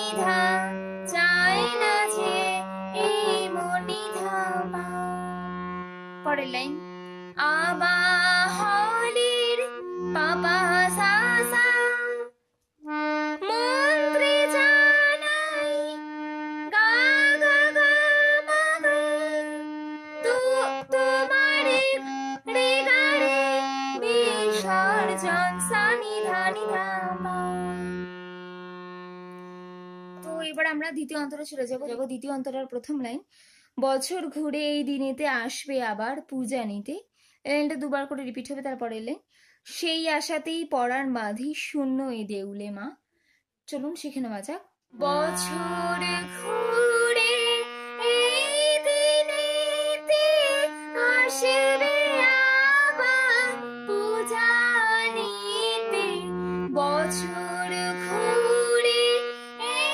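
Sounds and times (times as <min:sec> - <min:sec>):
woman singing: 0:00.0 - 0:05.4, 0:06.3 - 0:06.8, 0:07.4 - 0:12.3, 0:13.4 - 0:16.0, 0:16.7 - 0:28.0, 0:30.2 - 0:33.2, 0:43.8 - 0:59.9
harmonium sustained note: 0:00.0 - 0:30.8, 0:45.0 - 0:59.9.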